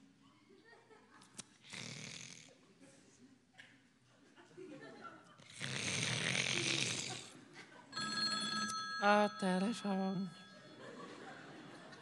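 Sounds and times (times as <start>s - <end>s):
loud rasping snore: 1.6s - 2.5s, 5.4s - 7.4s
telephone ringing: 8.0s - 12.0s.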